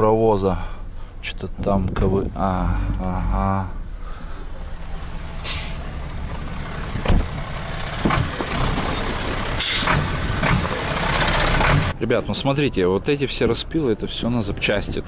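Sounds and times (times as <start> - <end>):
diesel truck idling: 2.3 - 12.0.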